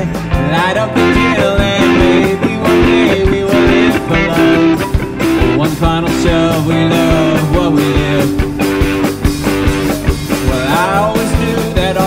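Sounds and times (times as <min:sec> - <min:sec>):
electric guitar chords: 0:00.0 - 0:12.0
live rock band playing: 0:00.0 - 0:12.0
steady drum beat: 0:00.0 - 0:12.0.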